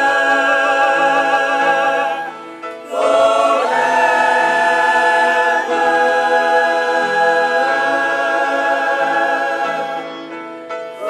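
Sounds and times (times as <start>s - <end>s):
youth choir singing in parts: 0.0s - 11.0s.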